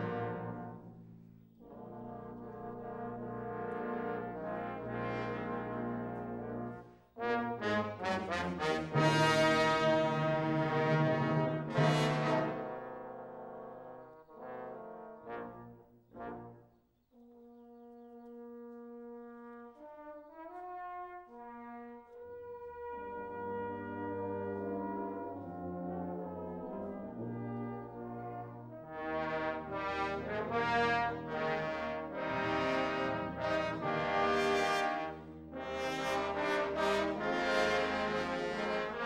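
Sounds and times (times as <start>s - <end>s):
trombone choir with tuba: 0.0s - 0.9s, 1.6s - 16.7s, 18.3s - 39.0s.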